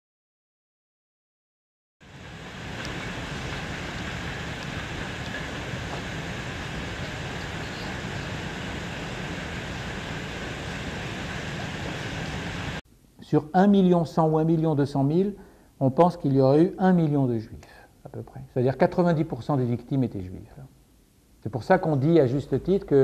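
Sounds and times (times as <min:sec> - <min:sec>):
rushing noise with low rumble: 0:02.0 - 0:12.8.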